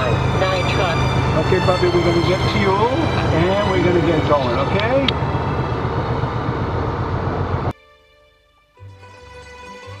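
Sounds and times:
truck engine rumble: 0.0s - 7.8s.

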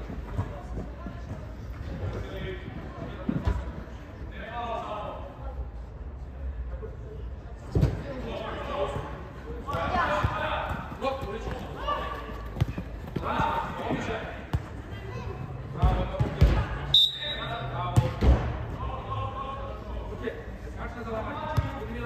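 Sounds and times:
ball being kicked and bouncing: 12.4s - 14.8s
referee whistle: 16.9s - 17.6s.

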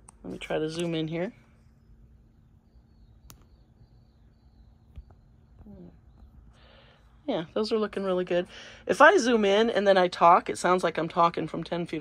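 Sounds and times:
faint steady hum: 0.0s - 12.0s
sharp click: 3.2s - 3.6s.

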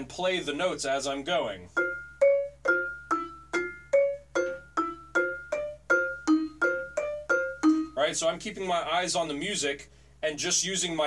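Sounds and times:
vibraphone played with mallets: 1.7s - 8.1s.

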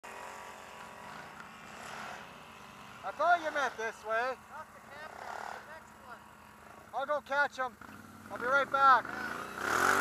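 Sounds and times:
atv engine running: 0.0s - 10.0s.

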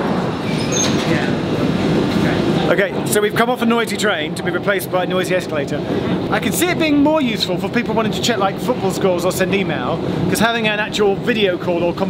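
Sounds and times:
underground train rumble: 0.0s - 12.0s.

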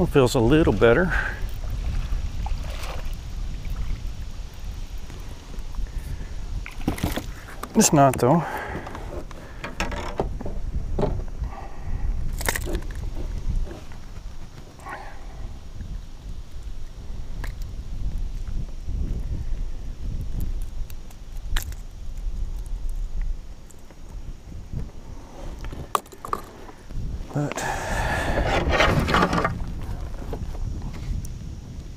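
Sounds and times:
wind rumble on microphone: 0.0s - 31.9s
clicks and knocks of fishing tackle: 12.3s - 13.3s, 20.4s - 24.0s, 25.6s - 26.8s.

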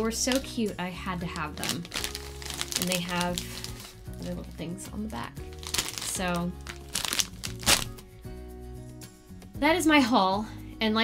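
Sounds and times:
candy wrappers crinkling: 0.0s - 0.6s, 1.2s - 4.6s, 5.4s - 8.0s
soft background music: 0.0s - 11.0s
sharp wrapper rustles: 0.2s - 0.6s, 1.2s - 4.6s, 5.4s - 8.0s.

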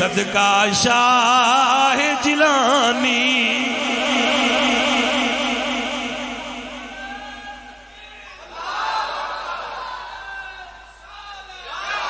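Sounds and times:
man singing through loudspeakers: 0.0s - 7.8s.

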